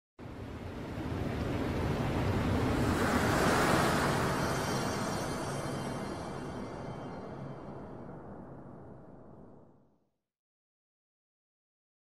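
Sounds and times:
rushing whoosh: 2.1s - 8.8s.

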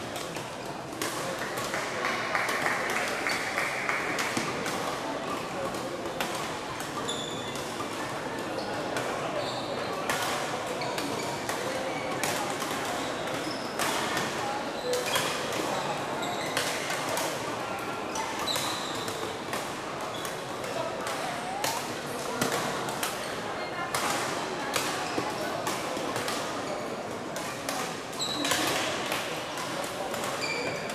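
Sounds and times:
murmur of voices: 0.0s - 30.9s
shoes squeaking on floor: 7.0s - 7.6s, 9.4s - 10.0s, 14.8s - 16.6s, 18.4s - 19.3s, 28.2s - 28.6s, 30.4s - 30.9s.

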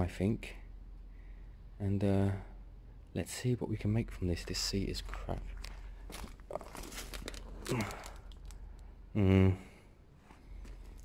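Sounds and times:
handling rustling and crinkling: 4.5s - 8.9s
short low vocal sound: 7.5s - 8.3s, 9.0s - 9.9s.

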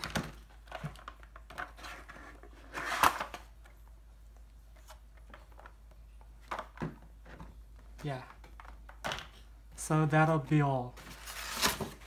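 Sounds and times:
cardboard scraping rustle: 11.0s - 12.0s.

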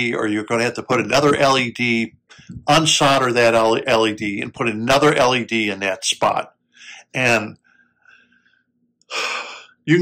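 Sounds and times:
man speaking: 0.0s - 7.6s, 9.1s - 10.0s.

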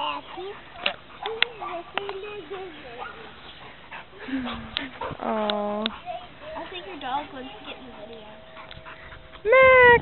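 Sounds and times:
children's voices: 0.0s - 3.4s.

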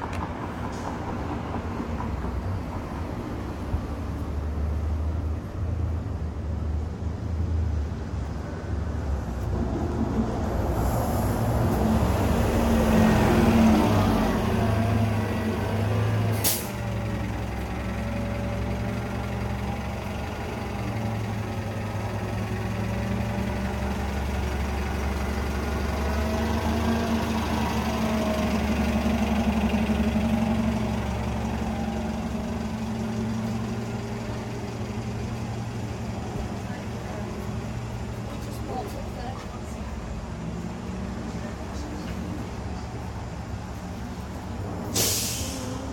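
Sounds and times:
bus engine hum: 0.0s - 45.9s
air brakes hissing: 16.3s - 17.0s, 44.8s - 45.9s.

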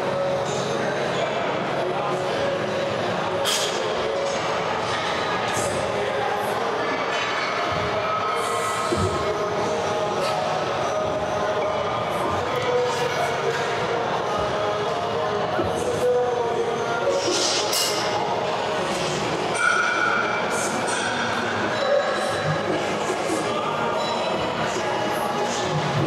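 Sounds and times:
music over speakers: 0.0s - 26.0s.

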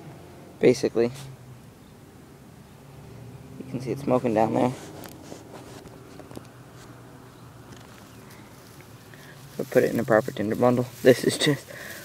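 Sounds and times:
dry grass rustling: 3.7s - 12.0s.

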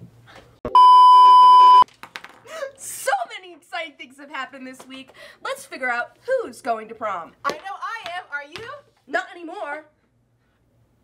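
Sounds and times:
steady test-tone beep: 0.7s - 1.8s.

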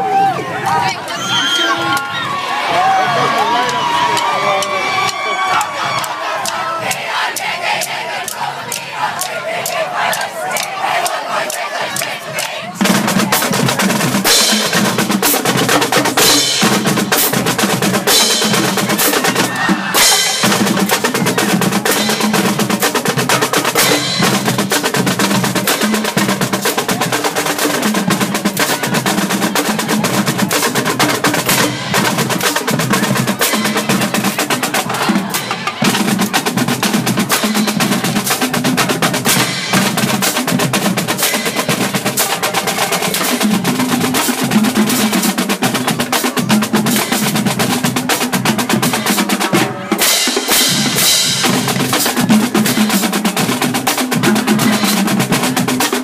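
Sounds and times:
marching drumline: 0.1s - 56.0s.

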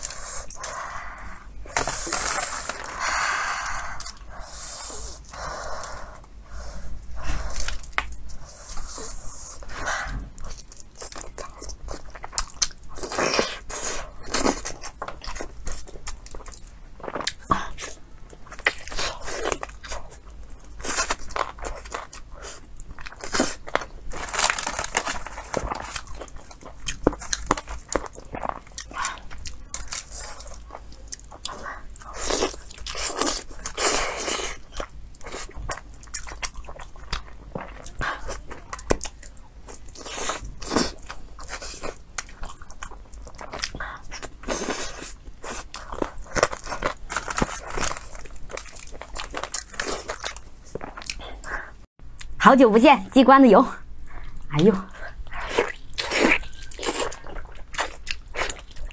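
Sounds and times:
person biting and chewing: 10.0s - 51.5s, 55.3s - 58.9s.

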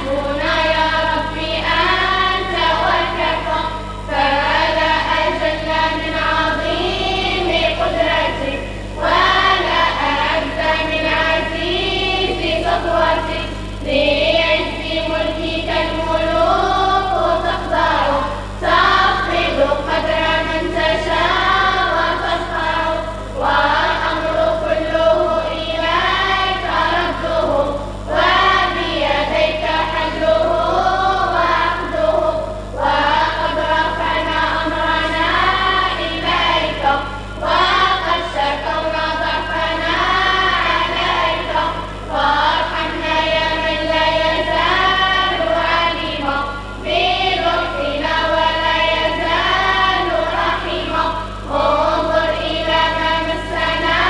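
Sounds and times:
girls singing in unison: 0.0s - 54.0s.

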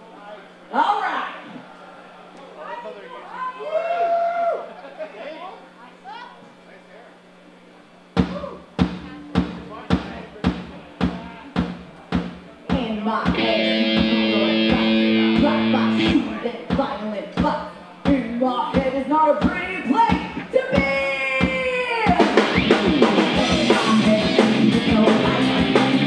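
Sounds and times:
drum kit beat: 8.2s - 26.0s
voices talking: 9.0s - 16.9s
guitars and bass chords: 13.3s - 16.5s, 22.4s - 26.0s.

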